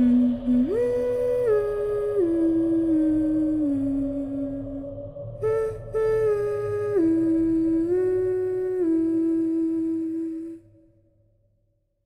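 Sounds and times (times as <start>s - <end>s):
person humming a slow tune: 0.0s - 10.7s.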